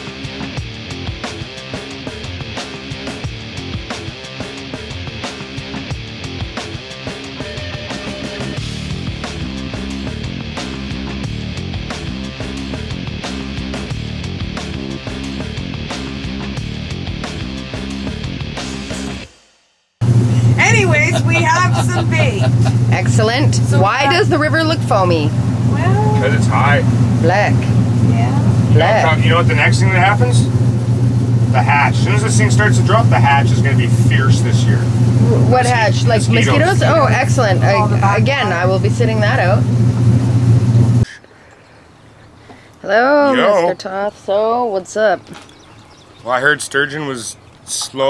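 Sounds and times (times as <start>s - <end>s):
motorboat engine droning: 1.6s - 18.2s, 20.0s - 48.0s
woman laughing: 20.3s - 24.4s, 35.3s - 38.4s
rushing water: 45.2s - 48.0s.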